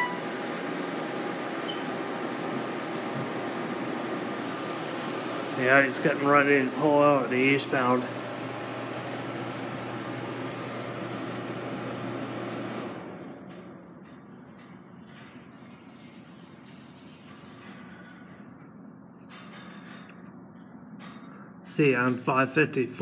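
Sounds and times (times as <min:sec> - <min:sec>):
machine hum with hiss: 0:00.0 - 0:20.0.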